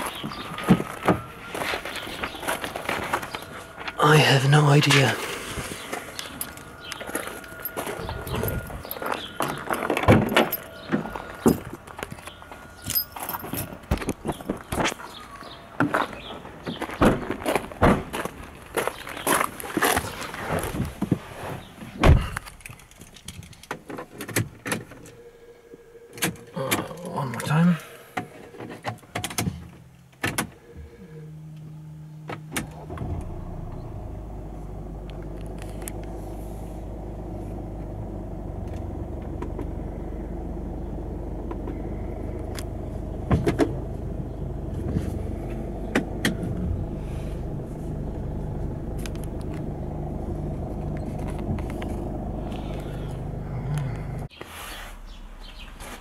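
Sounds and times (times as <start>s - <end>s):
diesel engine idling: 0.0s - 16.9s, 29.8s - 54.3s.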